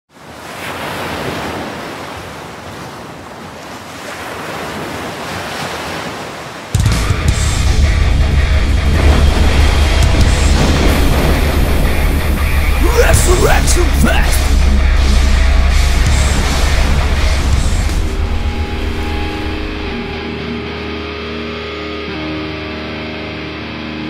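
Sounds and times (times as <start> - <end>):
ocean surf washing: 0.1 - 20.9
deep rumble: 7.1 - 12.8, 14.4 - 20.2.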